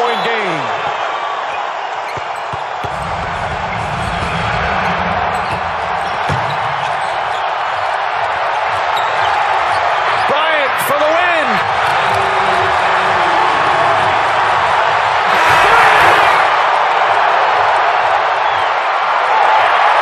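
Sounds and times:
large crowd din: 0.0s - 20.0s.

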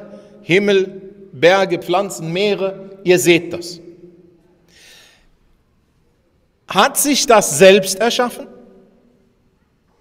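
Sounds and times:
man speaking: 0.0s - 4.3s, 6.7s - 8.8s
faint breath: 4.6s - 5.5s.

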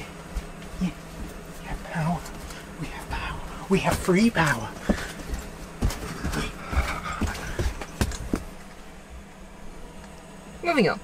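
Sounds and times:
feet stamping on a floor: 0.0s - 8.6s.

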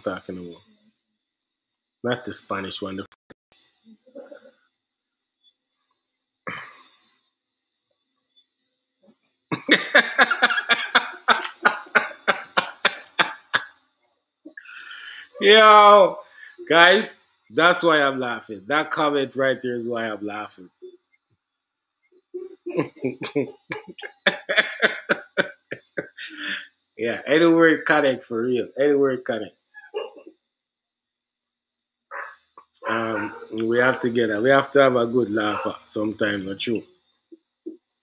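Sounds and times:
man laughing hard: 9.5s - 13.7s, 22.7s - 26.6s.

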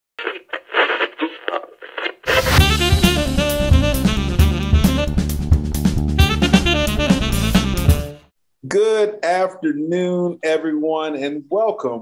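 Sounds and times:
tinny radio speaker bursts: 2.1s - 2.8s.

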